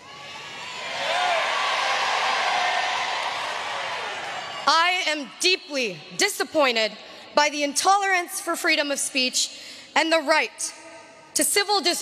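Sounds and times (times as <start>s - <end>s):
whoop: 0.0s - 4.6s
crowd applauding and cheering: 0.0s - 4.7s.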